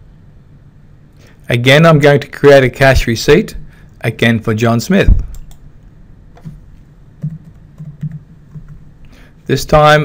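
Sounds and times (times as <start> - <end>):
soft keyboard keystrokes: 7.2 - 8.8.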